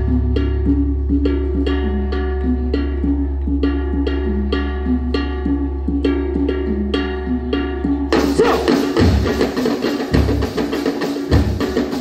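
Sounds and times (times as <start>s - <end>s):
pitched percussion dance music: 0.0s - 12.0s.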